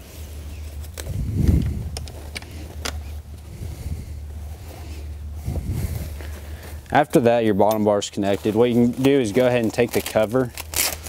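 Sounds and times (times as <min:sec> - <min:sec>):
steady low hum: 0:00.0 - 0:11.0
light clicks of metal parts: 0:00.9 - 0:03.2.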